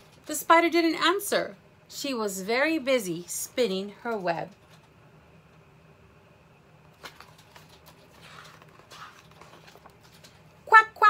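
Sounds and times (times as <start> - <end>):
paper page rustling: 6.9 - 10.6.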